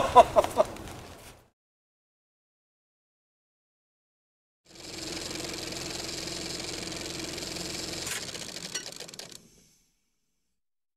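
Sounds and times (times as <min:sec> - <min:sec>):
motor clicks: 0:04.7 - 0:09.9
small motor humming and rattling: 0:04.7 - 0:10.4.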